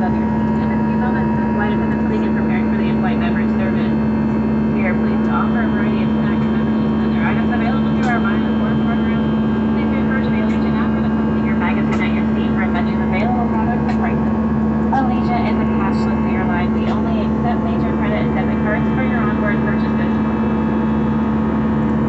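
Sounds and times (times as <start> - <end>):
faint voices: 0.0 - 4.0, 4.7 - 20.4
airliner cabin drone: 0.0 - 22.0.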